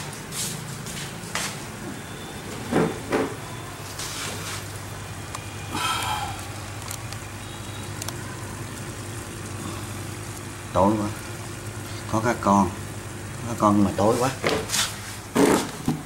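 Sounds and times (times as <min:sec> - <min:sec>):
air pump humming: 0:00.0 - 0:16.0.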